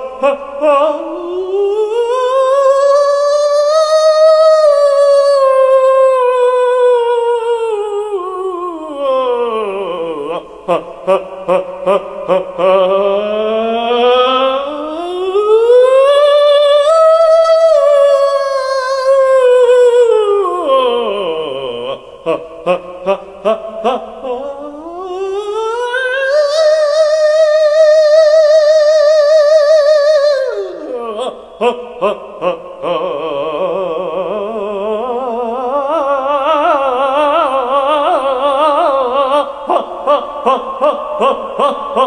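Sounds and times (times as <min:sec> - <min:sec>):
man singing wordless high note: 0:00.0 - 0:42.0.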